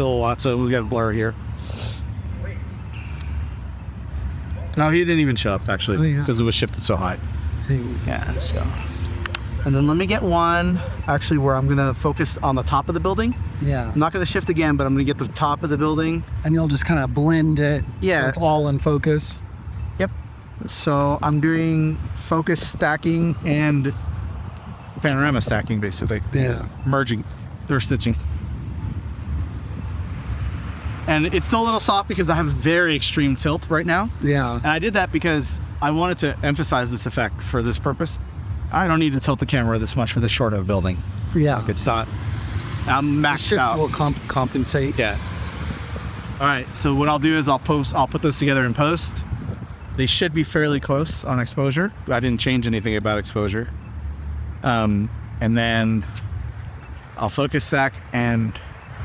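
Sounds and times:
city traffic rumble: 0:00.0 - 0:59.0.

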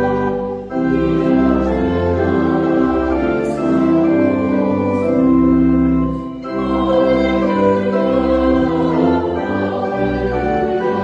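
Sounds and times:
church organ playing a hymn: 0:00.0 - 0:11.0.

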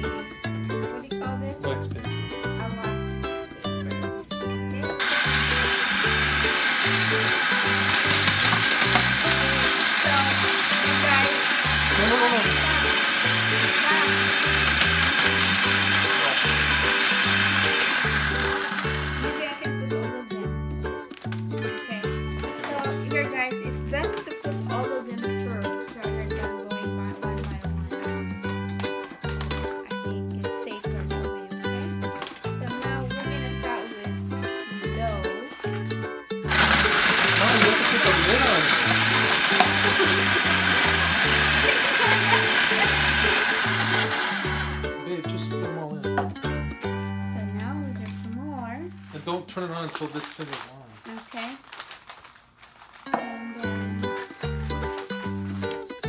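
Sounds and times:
background music with beat: 0:00.0 - 0:05.0, 0:18.6 - 0:47.4
food processor grinding cookies: 0:04.9 - 0:19.7, 0:36.5 - 0:45.0.

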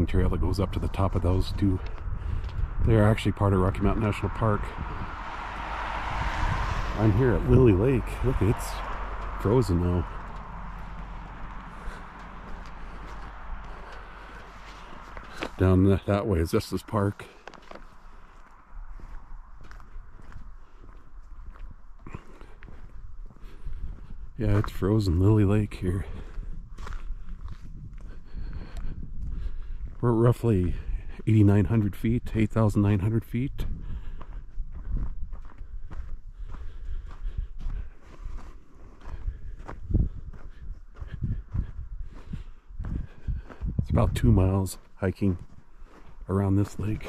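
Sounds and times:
low rumble on microphone: 0:00.0 - 0:16.1, 0:16.8 - 0:47.0
footsteps on asphalt: 0:00.0 - 0:47.0.

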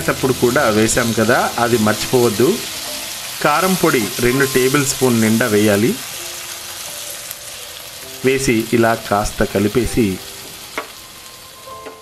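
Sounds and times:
masala sizzling in pan: 0:00.0 - 0:12.0.

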